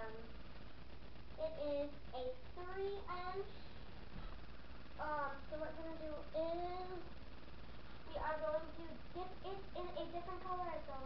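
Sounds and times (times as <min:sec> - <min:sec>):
girl singing: 0:01.4 - 0:03.7, 0:05.0 - 0:07.1, 0:08.1 - 0:11.0.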